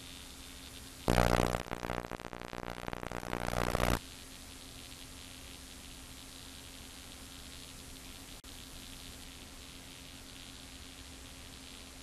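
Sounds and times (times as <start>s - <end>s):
faint steady hiss: 0.0s - 12.0s
low hum: 1.1s - 4.0s.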